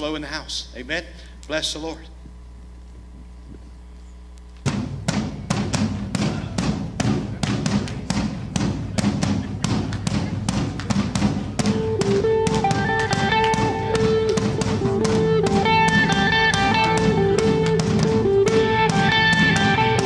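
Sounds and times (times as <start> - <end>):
steady beat of sharp hits: 4.6 - 20.0
bass guitar: 4.8 - 20.0
electric guitar: 9.4 - 20.0
held melody line: 9.6 - 20.0.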